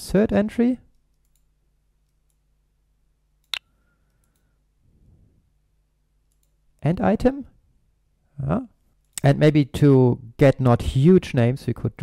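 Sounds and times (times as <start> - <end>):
computer mouse click: 6.3 - 6.6.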